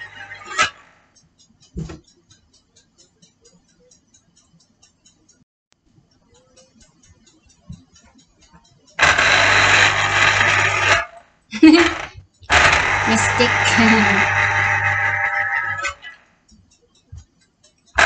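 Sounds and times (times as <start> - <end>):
electric juicer motor whirring: 0.0 - 0.5, 9.0 - 11.1, 11.8 - 16.0.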